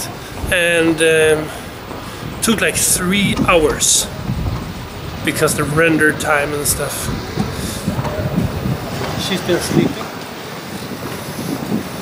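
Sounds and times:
distant traffic: 0:00.0 - 0:12.0
wind on microphone: 0:00.0 - 0:12.0.

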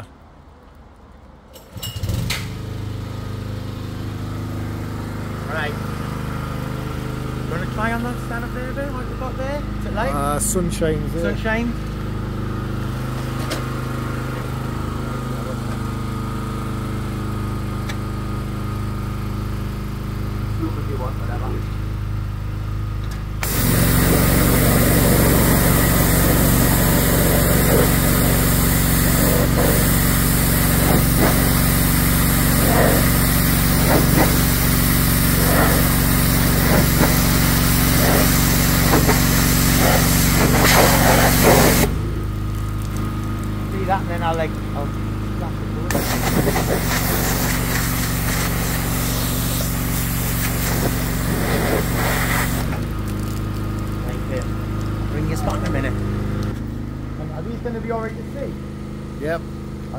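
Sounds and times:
pressure washer engine running: 0:02.0 - 0:59.9
water jet hissing on metal sign: 0:23.4 - 0:42.0, 0:45.9 - 0:52.9.

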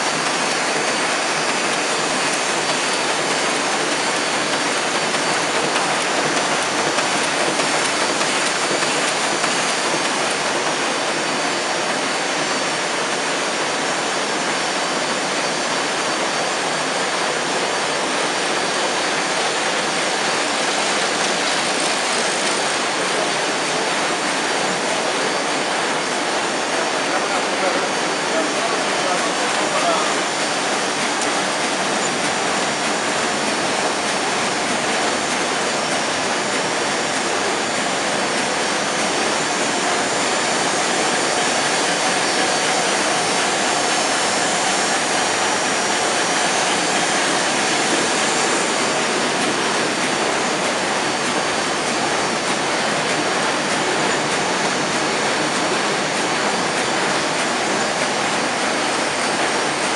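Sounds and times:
printing press running: 0:00.0 - 0:59.9.

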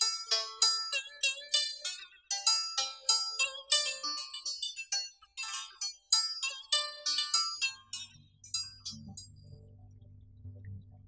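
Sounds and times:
plucked zither melody: 0:00.0 - 0:10.0
low steady hum: 0:07.8 - 0:11.0.

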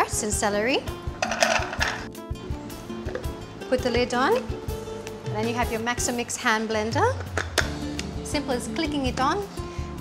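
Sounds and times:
background music with steady beat: 0:00.0 - 0:10.0
vegetable pieces clattering into bowl: 0:01.2 - 0:02.1.

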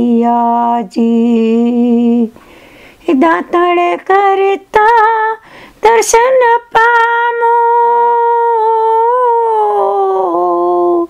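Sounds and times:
woman singing a long note: 0:03.1 - 0:11.0.

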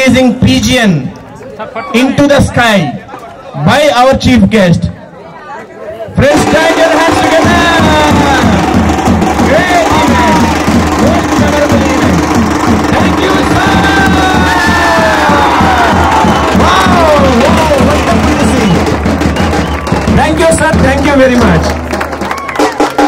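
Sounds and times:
crowd cheering and shouting: 0:06.0 - 0:23.0
loud music with steady beat: 0:06.4 - 0:19.3.

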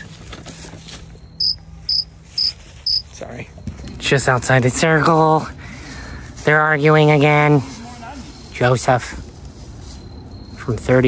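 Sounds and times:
cricket chirping: 0:01.2 - 0:03.1, 0:07.6 - 0:11.0.

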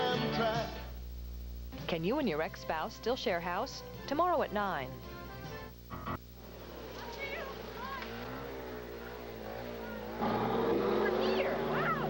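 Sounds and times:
music: 0:00.0 - 0:01.0, 0:01.7 - 0:06.2
scooter and bus engines: 0:06.4 - 0:12.0.

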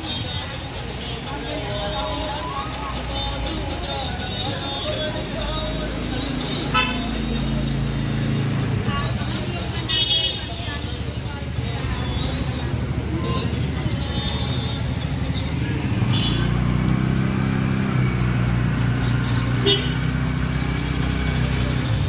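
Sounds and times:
chatter of passers-by: 0:00.0 - 0:22.0
vehicle engines running: 0:00.0 - 0:22.0
car horn toot: 0:06.7 - 0:07.1, 0:09.9 - 0:10.4, 0:19.6 - 0:20.1.

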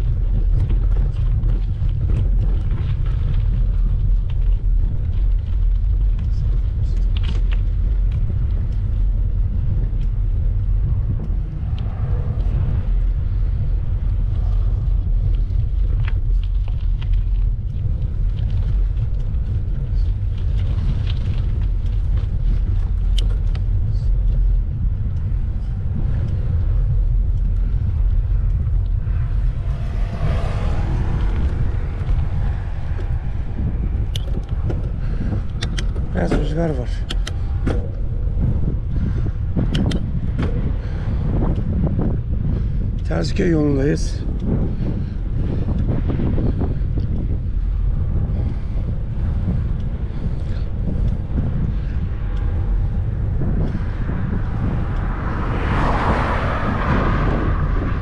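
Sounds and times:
tyres rolling on dirt road: 0:00.0 - 0:58.0
wind buffeting microphone: 0:00.0 - 0:58.0.

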